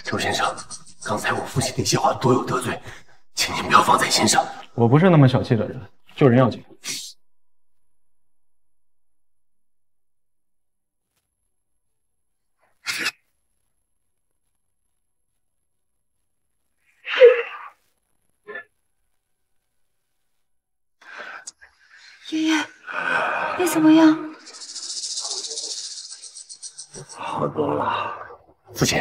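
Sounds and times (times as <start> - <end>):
fast-pulsing high hiss: 0.0 - 7.1, 24.4 - 27.2
woman's voice: 23.6 - 24.3.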